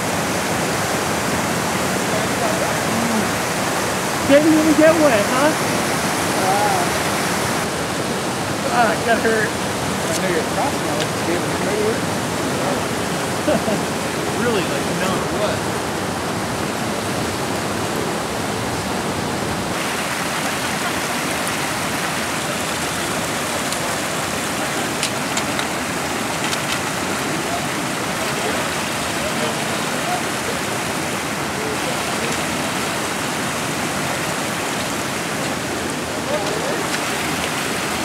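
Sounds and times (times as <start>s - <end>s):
creek rushing over boulders: 0.0s - 38.0s.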